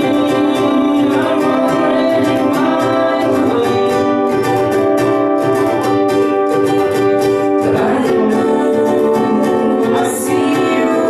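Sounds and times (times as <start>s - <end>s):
people singing: 0.0s - 5.4s, 7.3s - 11.0s
ukuleles strummed: 0.0s - 11.0s.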